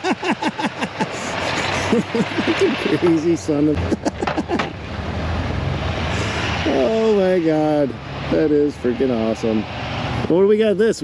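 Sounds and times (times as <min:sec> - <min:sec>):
man laughing: 0:00.0 - 0:04.8
truck engines running: 0:00.0 - 0:11.0.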